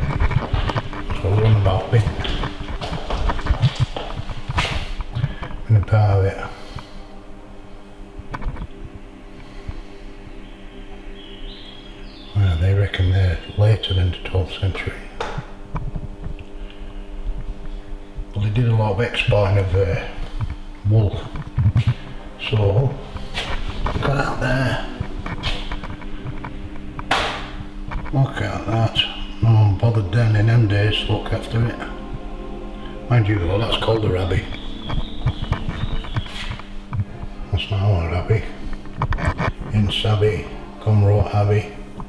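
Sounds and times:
low electrical hum: 0.0 - 42.0.

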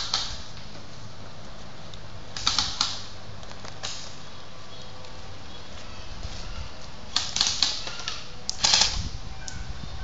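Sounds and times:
airsoft rifle bursts: 7.1 - 9.0.

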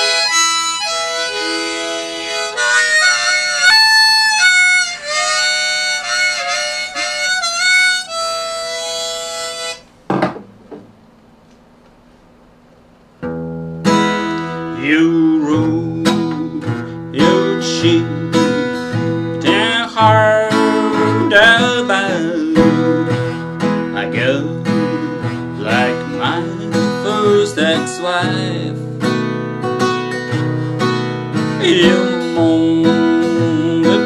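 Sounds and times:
harmonica melody: 0.0 - 9.9, 13.8 - 34.0
acoustic guitar strumming: 0.0 - 11.0, 13.2 - 34.0
man singing: 14.7 - 28.9, 31.4 - 34.0.

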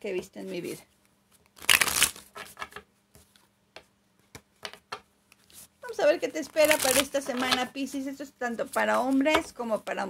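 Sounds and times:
cards being shuffled: 0.6 - 3.5, 6.4 - 10.0.

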